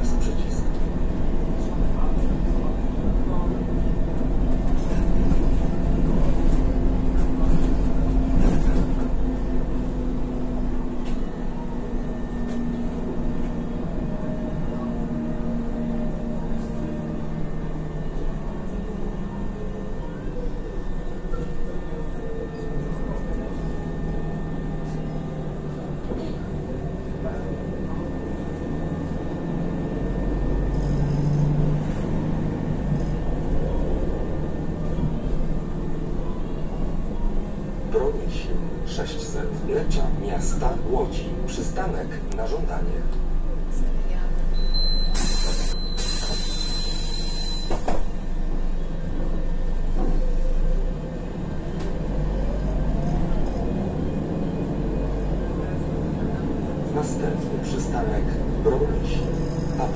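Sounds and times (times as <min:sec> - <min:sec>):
bus engine and drivetrain: 0:00.0 - 0:59.9
low road rumble: 0:00.0 - 0:59.9.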